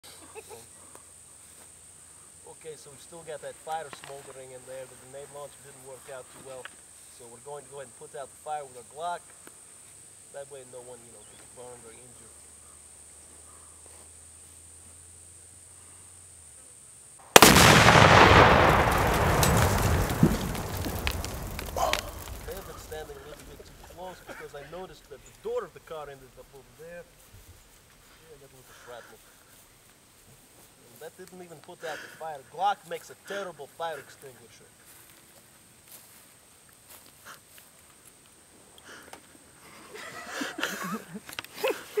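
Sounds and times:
men laughing: 0:00.0 - 0:00.7, 0:21.7 - 0:25.1, 0:39.6 - 0:42.0
pistol shot: 0:17.3 - 0:23.5
loud explosion blast: 0:17.3 - 0:24.0.

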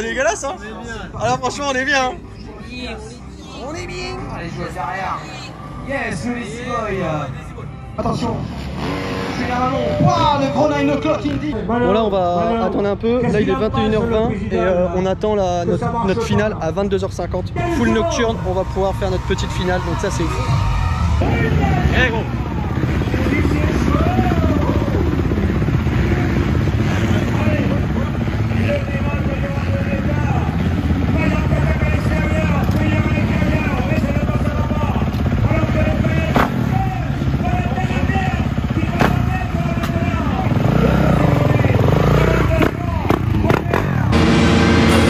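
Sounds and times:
dirt bike engines revving: 0:00.0 - 0:14.7, 0:17.5 - 0:45.0.

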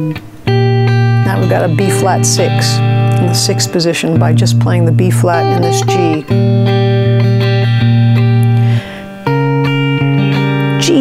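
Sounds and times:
fingerpicked electric guitar chords: 0:00.0 - 0:11.0.

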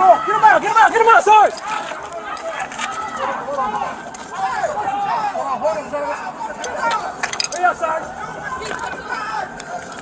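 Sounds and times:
distant voices shouting: 0:00.0 - 0:10.0
light clicks and clatters: 0:06.6 - 0:07.8.

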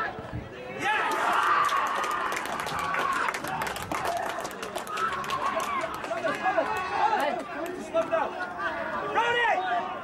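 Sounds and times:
men shouting and chattering: 0:00.6 - 0:10.0.

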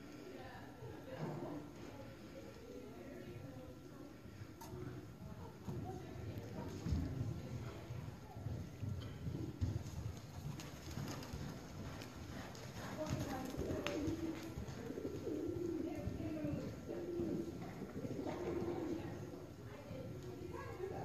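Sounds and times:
horse hooves thudding: 0:08.6 - 0:19.2.

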